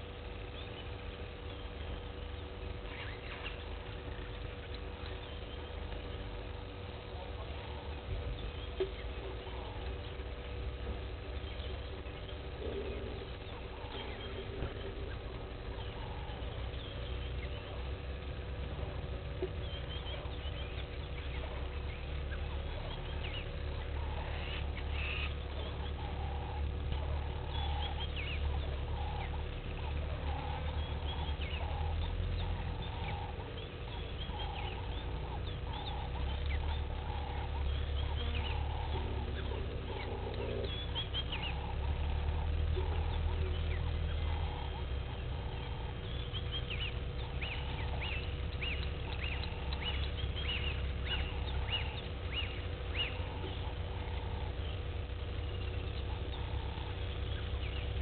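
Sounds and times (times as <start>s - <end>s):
birds chirping: 0.0s - 58.0s
repeated low bird call: 0.0s - 58.0s
steady low rumble: 0.0s - 58.0s.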